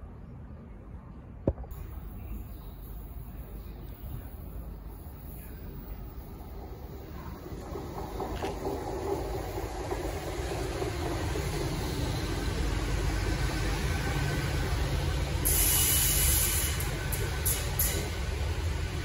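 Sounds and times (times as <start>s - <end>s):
train diesel engines rumbling: 1.7s - 19.0s
train wheels on rails: 3.9s - 19.0s.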